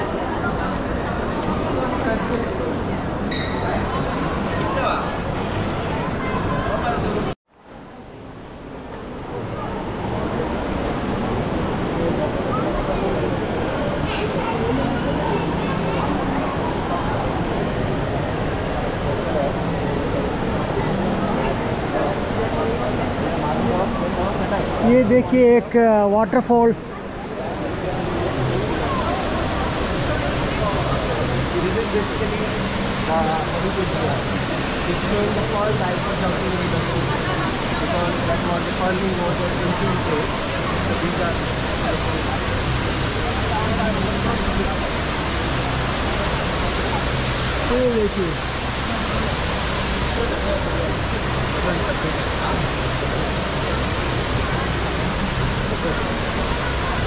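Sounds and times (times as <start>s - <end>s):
crowd chattering: 0.0s - 7.4s, 8.0s - 57.0s
waterfall rushing: 8.0s - 57.0s.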